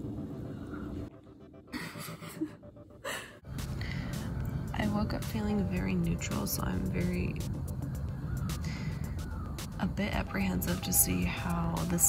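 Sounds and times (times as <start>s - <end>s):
breathing: 3.1s - 4.3s, 8.6s - 9.2s.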